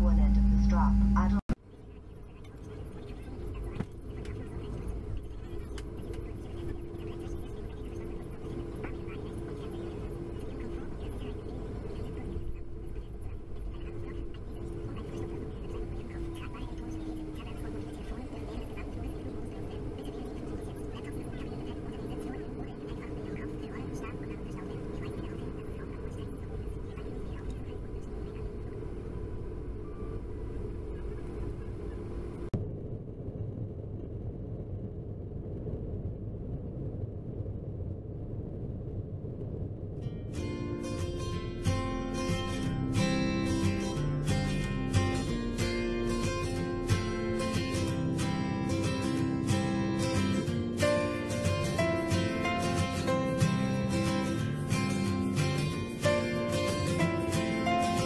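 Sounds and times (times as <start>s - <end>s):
aircraft engine rumble: 0.0s - 58.0s
engine whine: 0.0s - 58.0s.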